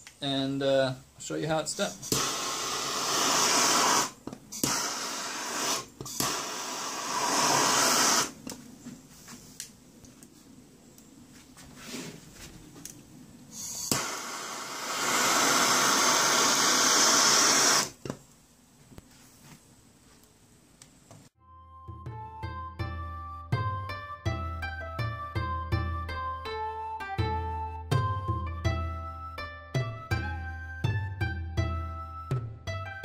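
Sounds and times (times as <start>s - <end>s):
gas torch flame hissing: 1.8s - 8.6s, 13.5s - 18.2s.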